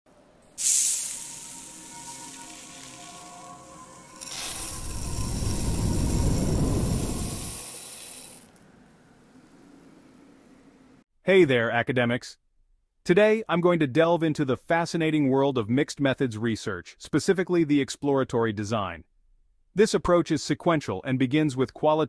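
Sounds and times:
sudden hit with hissing shimmer: 0.6 - 8.4
deep whoosh: 4.3 - 7.8.

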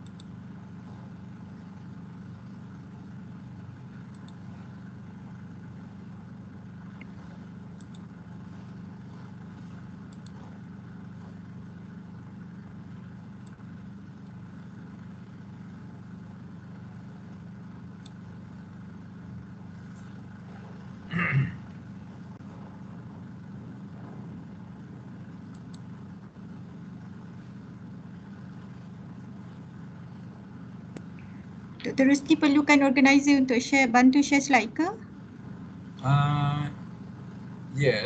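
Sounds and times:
faint clicks: 0.0 - 0.4, 4.0 - 4.5, 6.9 - 8.1, 10.1 - 10.4, 13.4 - 13.6, 18.0 - 18.2, 25.5 - 25.9
low machine hum: 0.0 - 38.0.

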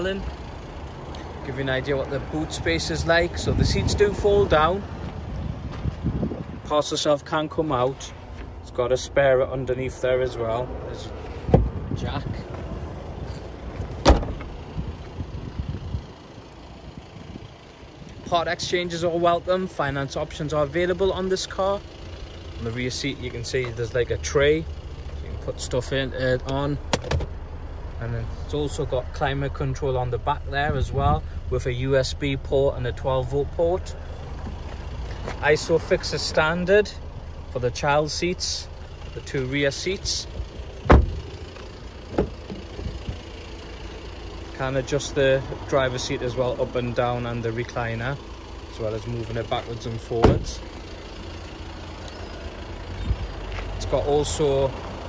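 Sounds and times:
low rumbling: 7.7 - 55.0
car tailgate thud: 14.0 - 14.5, 40.8 - 41.2, 50.2 - 50.5.

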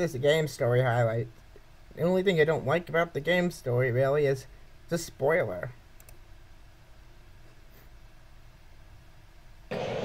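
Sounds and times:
baseball broadcast audio: 0.0 - 5.9
faint low hum: 0.0 - 10.0.

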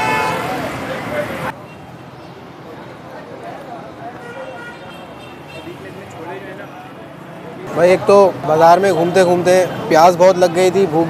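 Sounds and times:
vehicle horn toot: 0.0 - 0.6
street traffic: 0.0 - 11.0.

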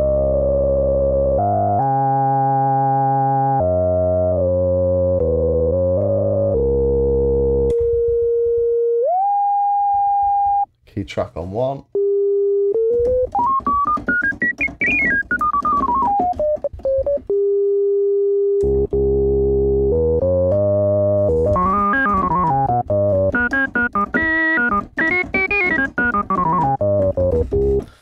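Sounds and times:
full organ-like synthesizer runs: 0.0 - 7.7, 13.3 - 27.8.

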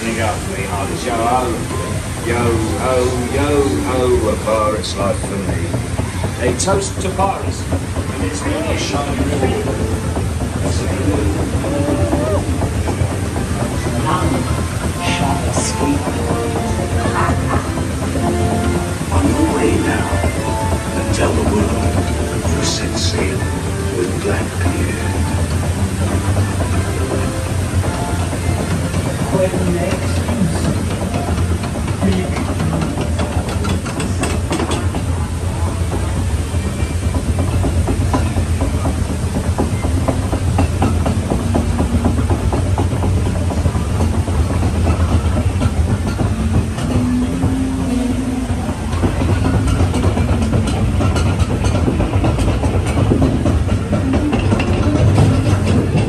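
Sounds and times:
rapid clattering of boat lift: 0.0 - 56.0.

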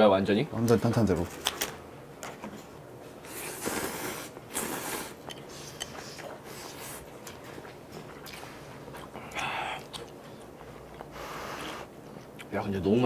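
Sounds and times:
noodles slurped: 3.3 - 7.4
chewing: 4.5 - 11.2
wet mouth clicks: 9.3 - 10.5.

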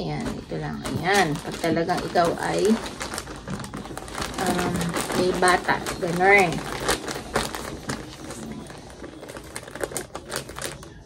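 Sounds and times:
plastic crinkling: 0.0 - 11.0.

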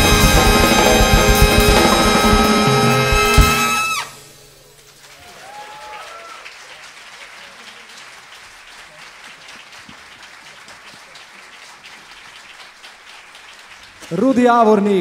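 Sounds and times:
audience applauding: 0.0 - 15.0
voices cheering: 5.1 - 6.7.

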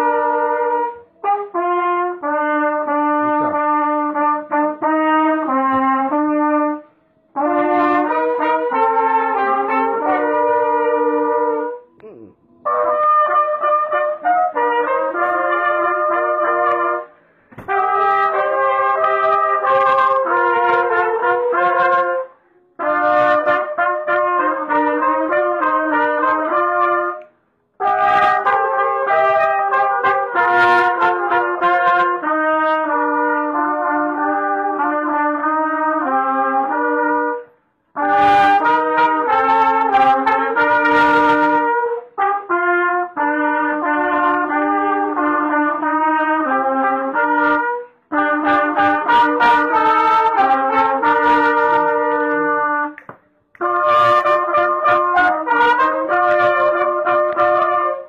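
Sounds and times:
trumpets and flugelhorns playing: 0.0 - 58.0.

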